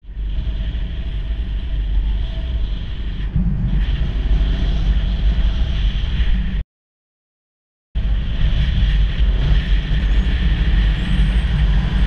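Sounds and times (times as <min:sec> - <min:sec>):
motorcycle low rumble: 0:00.0 - 0:06.6, 0:08.0 - 0:12.0
wind rushing over microphone: 0:00.0 - 0:06.6, 0:08.0 - 0:12.0.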